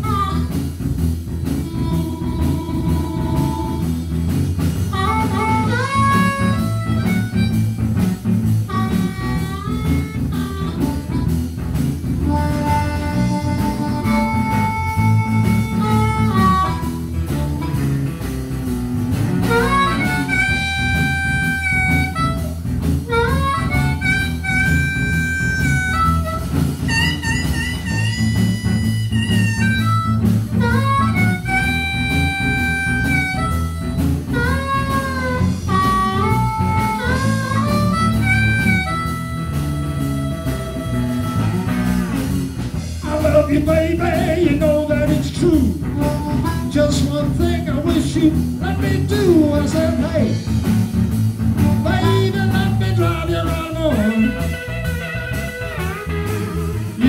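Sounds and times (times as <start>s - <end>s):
bass guitar: 0.0s - 57.0s
blues harmonica solo: 0.0s - 57.0s
drums: 0.0s - 57.0s
electric guitar: 0.0s - 57.0s.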